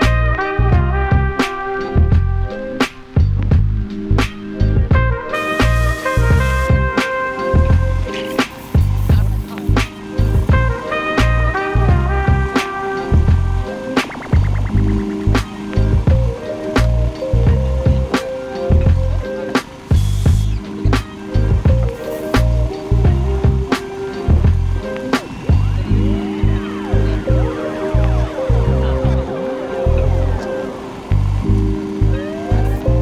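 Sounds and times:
music with bass and drums: 0:00.0 - 0:33.0.

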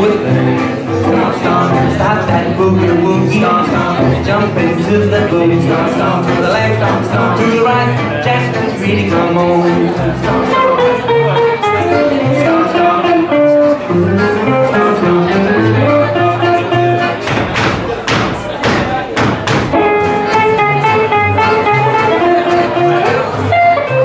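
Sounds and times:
acoustic swing band playing: 0:00.0 - 0:24.0
sharp hard-struck chords: 0:00.0 - 0:24.0.

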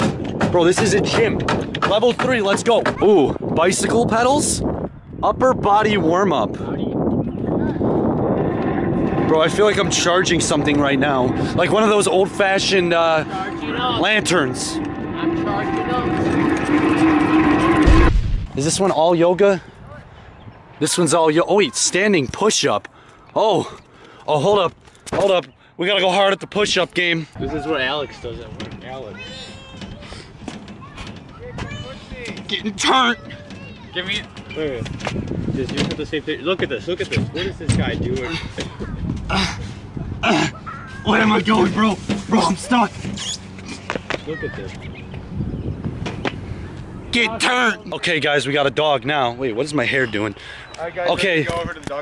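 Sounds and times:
low rumble of wind: 0:00.0 - 0:52.0
high-pitched squeal: 0:07.5 - 0:18.8
hand cranks whirring: 0:07.8 - 0:18.1.

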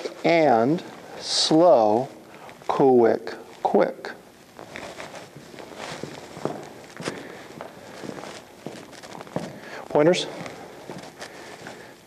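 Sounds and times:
dance shoes tapping on wooden floor: 0:06.0 - 0:09.6.

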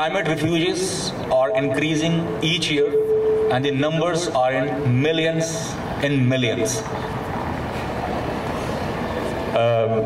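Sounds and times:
bus passing: 0:01.9 - 0:10.0.

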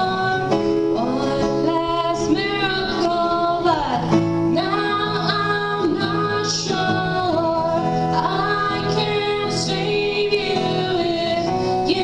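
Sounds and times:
acoustic guitar: 0:00.0 - 0:12.0
woman singing into a microphone: 0:00.0 - 0:12.0.

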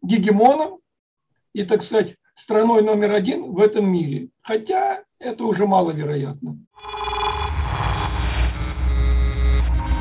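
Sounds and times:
glitch effects: 0:06.8 - 0:10.0
static-like noise: 0:06.8 - 0:10.0
steady electronic tones: 0:06.8 - 0:10.0.

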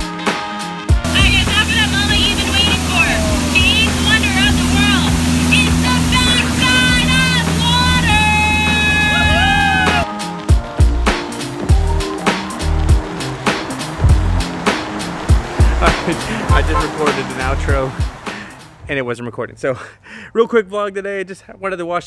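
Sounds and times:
boat motor droning: 0:01.0 - 0:10.1, 0:10.8 - 0:18.8.

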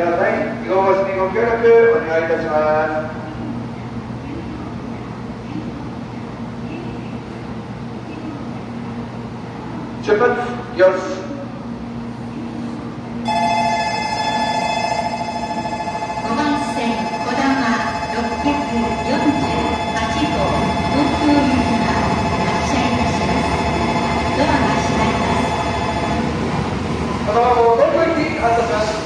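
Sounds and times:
train rumbling past: 0:00.0 - 0:29.0
electronic trilling departure bell: 0:13.2 - 0:26.3.

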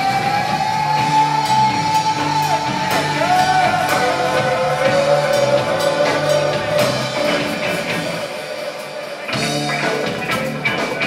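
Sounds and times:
repeating bass line: 0:00.0 - 0:08.2
rock band playing: 0:00.0 - 0:11.0.

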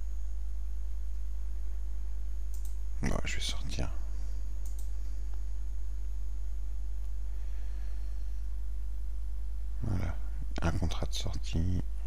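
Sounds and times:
low electrical hum: 0:00.0 - 0:12.0
computer mouse clicks: 0:02.5 - 0:02.8, 0:04.6 - 0:05.0
person mumbling: 0:09.8 - 0:10.2.

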